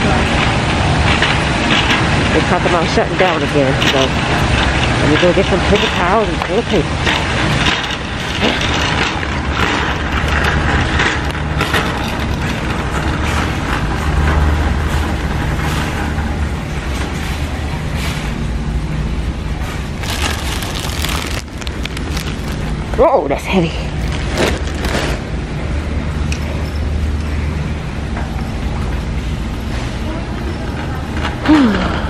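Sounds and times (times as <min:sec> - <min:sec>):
low hum of store background: 0:00.0 - 0:32.0
shopping cart rattling on concrete: 0:01.0 - 0:16.0, 0:19.9 - 0:25.4.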